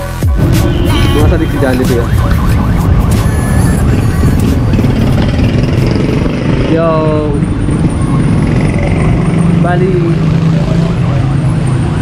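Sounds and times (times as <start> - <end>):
street traffic: 0.0 - 12.0
vehicle engine droning: 0.0 - 12.0.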